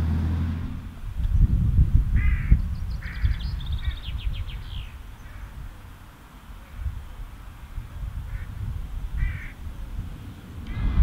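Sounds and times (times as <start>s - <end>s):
wind rumble on microphone: 0.0s - 11.0s
jackdaw calls: 2.2s - 5.7s, 8.3s - 9.6s.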